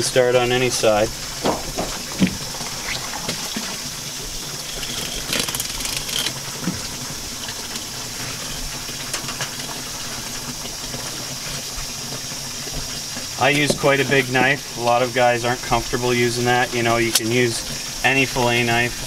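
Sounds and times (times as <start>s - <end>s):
water running from a hose: 0.0s - 19.0s.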